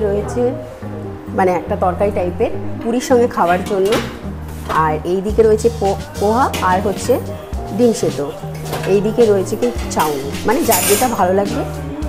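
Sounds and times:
metallic lid clink: 10.0s - 11.2s
tongs scraping rattle: 10.0s - 11.2s.

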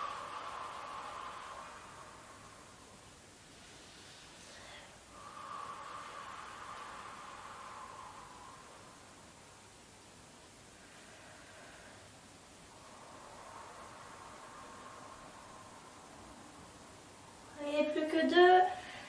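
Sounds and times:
woman exhaling softly: 0.0s - 9.4s
faint breath in: 0.0s - 17.5s, 18.7s - 19.0s.

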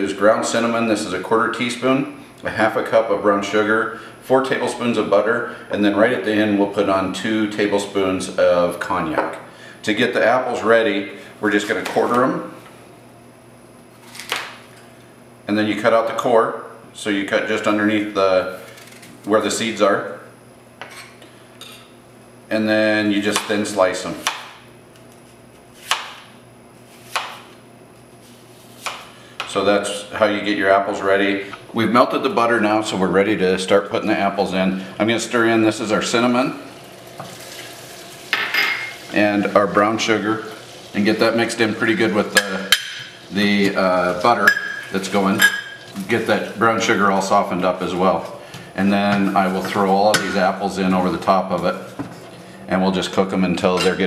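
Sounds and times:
knife cutting apple on board: 25.1s - 26.2s, 26.9s - 27.6s, 28.7s - 29.5s.

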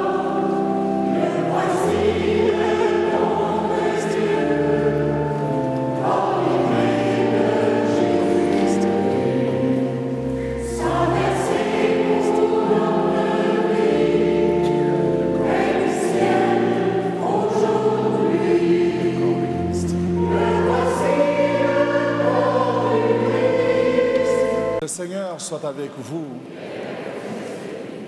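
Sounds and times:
choir singing a hymn: 0.0s - 24.8s, 26.4s - 28.0s.

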